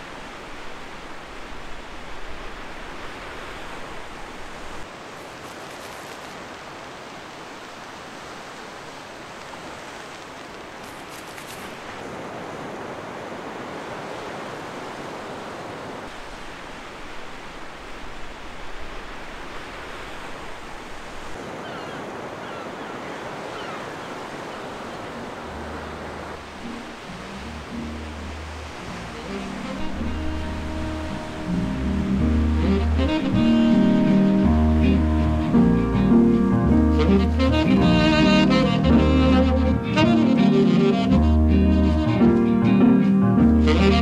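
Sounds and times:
ocean waves breaking: 0.0s - 44.0s
wind: 0.0s - 44.0s
low bass music: 30.1s - 44.0s.

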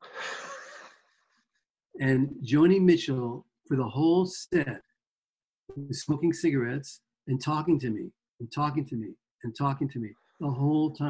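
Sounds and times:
person exhaling: 0.0s - 1.0s.

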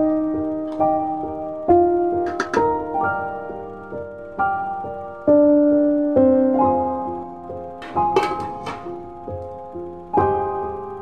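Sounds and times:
gentle piano music: 0.0s - 11.0s.

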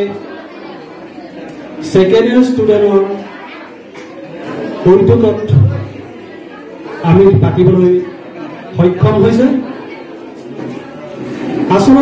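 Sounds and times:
man speaking through a microphone: 0.0s - 0.3s, 1.8s - 3.4s, 4.6s - 6.1s, 6.8s - 9.8s, 11.6s - 12.0s
crowd chatter in a large hall: 0.0s - 12.0s.

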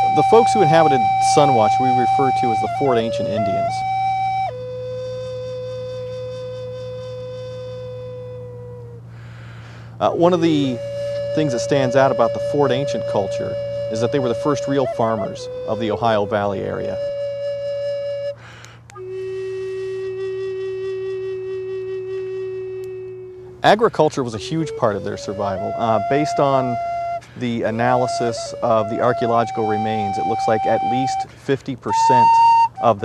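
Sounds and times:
flute holding a long note: 0.0s - 33.0s
steady low hum: 0.0s - 33.0s.

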